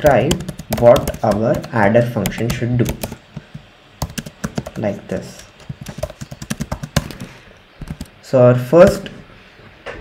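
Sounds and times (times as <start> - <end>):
computer keyboard typing: 0.0 - 8.2.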